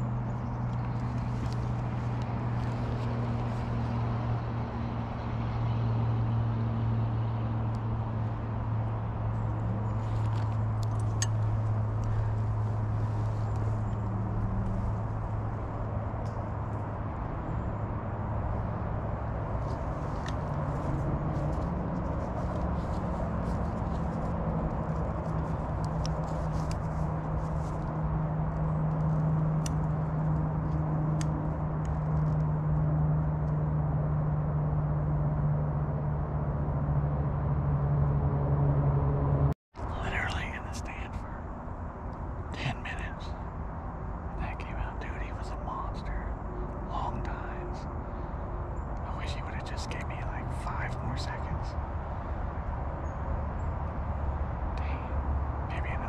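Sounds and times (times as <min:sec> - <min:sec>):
distant engine droning: 0:00.0 - 0:56.0.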